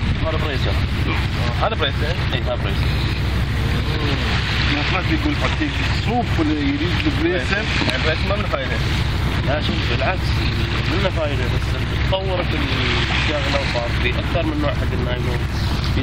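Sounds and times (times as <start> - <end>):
men talking: 0.0 - 16.0
wind rumble on microphone: 0.0 - 16.0.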